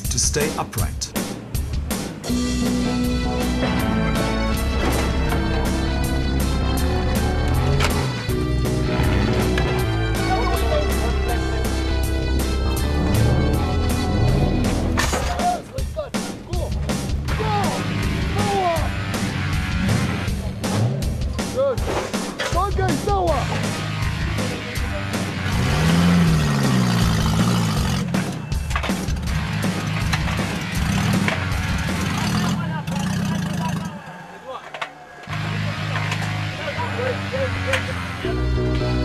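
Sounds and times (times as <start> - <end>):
background music: 0.0 - 39.0
car engines revving: 1.2 - 15.1, 16.2 - 21.5, 22.8 - 39.0
people shouting: 17.3 - 19.1.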